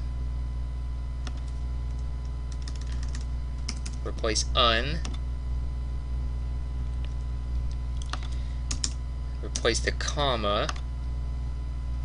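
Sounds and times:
low hum: 0.0s - 12.0s
keyboard typing: 1.2s - 4.3s, 8.0s - 9.7s.

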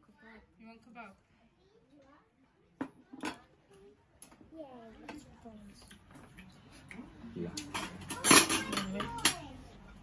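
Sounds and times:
metal pots and pans clattering: 7.6s - 9.5s.

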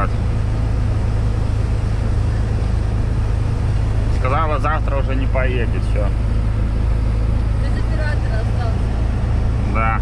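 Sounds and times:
diesel truck engine drone: 0.0s - 10.0s
road noise: 0.0s - 10.0s.

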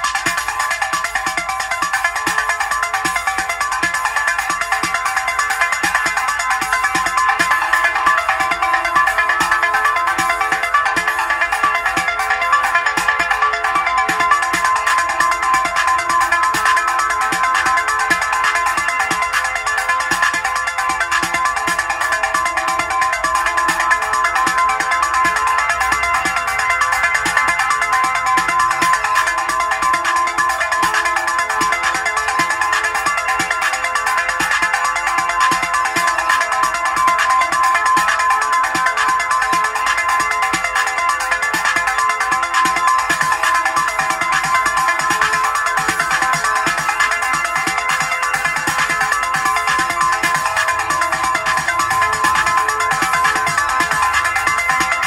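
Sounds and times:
electronic drum machine and synth track: 0.0s - 55.0s.

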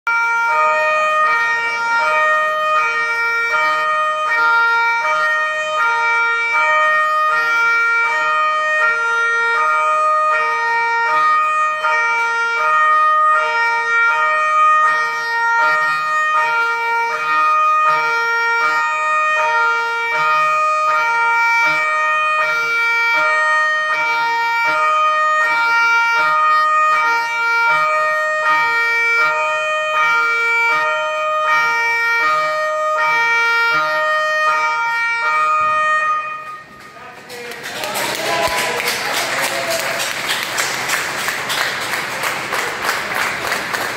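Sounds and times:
two-tone police sirens: 0.1s - 37.1s.

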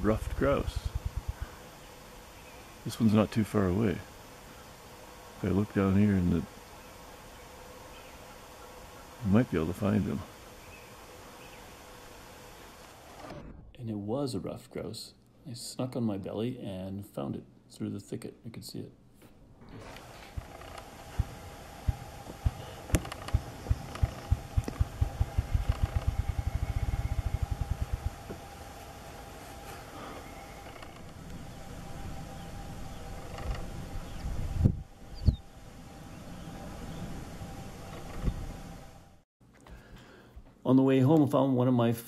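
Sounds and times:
low thumps: 0.0s - 1.5s, 19.6s - 29.3s
grouse wing-beat drumming: 20.3s - 28.5s.

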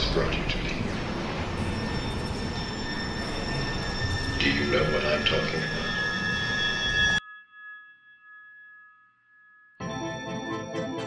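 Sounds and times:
high ringing tone: 0.0s - 10.7s.

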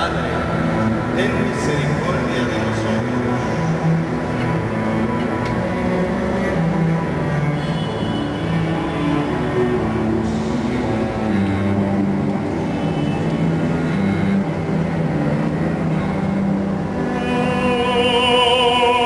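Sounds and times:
cellos and basses playing low notes: 0.0s - 19.0s
operatic voice singing: 16.9s - 19.0s.

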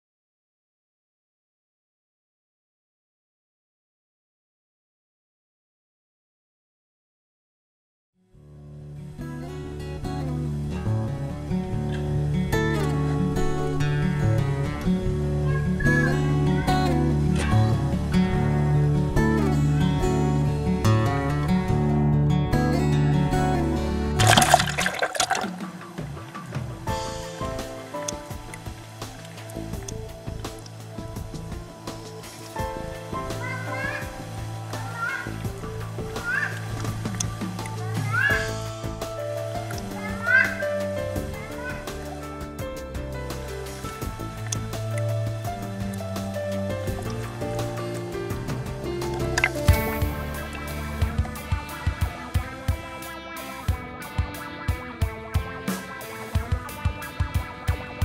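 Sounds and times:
child splashing into pool: 24.2s - 25.8s
water bubbling: 24.2s - 26.2s, 48.3s - 51.4s
music with steady beat: 25.5s - 58.0s.

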